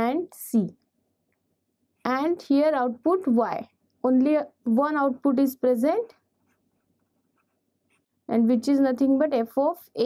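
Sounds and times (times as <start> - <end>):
pen writing on paper: 6.0 - 8.1.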